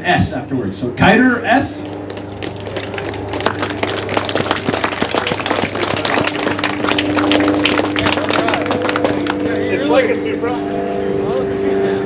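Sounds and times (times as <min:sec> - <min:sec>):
steady low hum: 0:00.0 - 0:12.0
small crowd applauding: 0:02.0 - 0:09.9.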